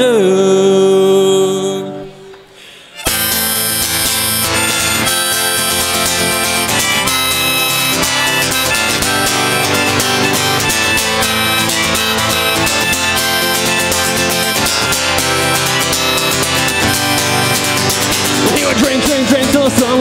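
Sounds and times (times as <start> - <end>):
harmonica: 2.8 - 20.0
strummed acoustic guitar: 3.0 - 20.0.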